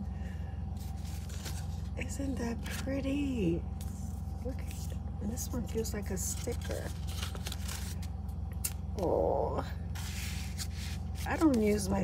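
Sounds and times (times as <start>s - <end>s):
steady low hum: 0.0s - 12.0s
paper cards being handled: 0.7s - 3.1s, 3.7s - 8.9s, 9.9s - 12.0s.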